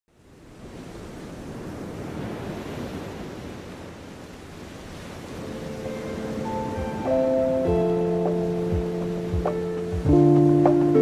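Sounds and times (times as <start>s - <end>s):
rushing wash like surf: 0.1s - 11.0s
sustained music notes: 5.4s - 11.0s.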